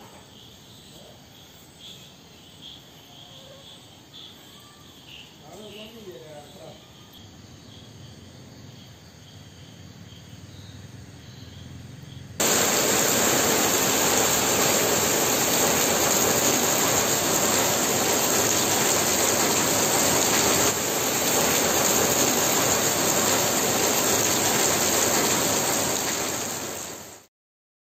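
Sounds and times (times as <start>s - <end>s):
faint crickets chirping: 0.0s - 27.2s
heavy rain hissing: 12.4s - 27.3s.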